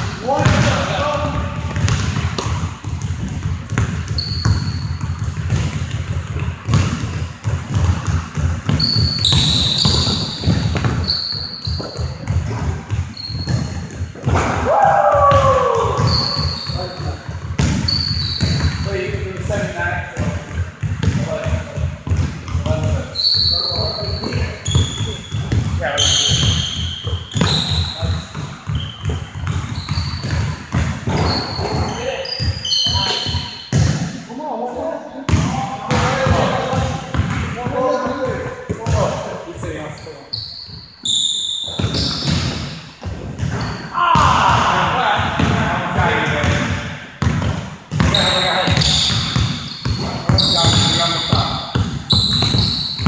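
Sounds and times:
players' voices: 0.0 - 4.8, 9.4 - 40.4, 43.4 - 52.8
sneakers squeaking: 0.0 - 34.3, 35.2 - 53.0
basketball dribbling on hardwood floor: 0.4 - 14.4, 15.0 - 34.1, 35.3 - 39.0, 41.6 - 44.6, 45.4 - 45.7, 46.3 - 53.0.

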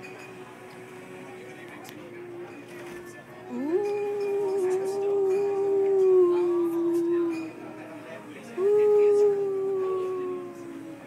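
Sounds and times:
person howling long notes: 3.5 - 7.9, 8.6 - 11.0.

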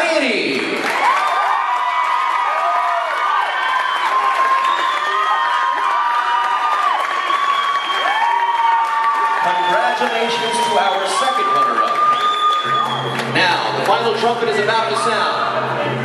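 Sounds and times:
audience cheering and applauding: 0.0 - 15.7
high-pitched screams and whoops: 1.0 - 13.2.

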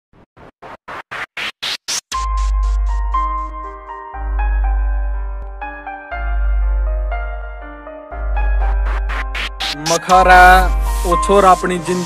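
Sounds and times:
electronic noise bursts: 0.2 - 3.0.

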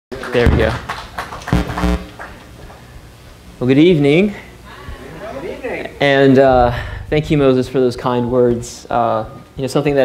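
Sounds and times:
low room noise: 0.1 - 10.0.

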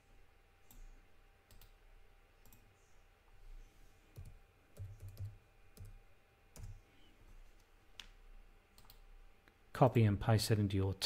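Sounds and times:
faint computer mouse clicks: 8.8 - 9.0.

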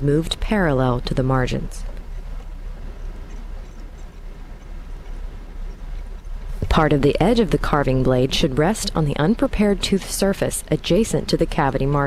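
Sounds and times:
steady low hum and hiss: 0.0 - 12.0.

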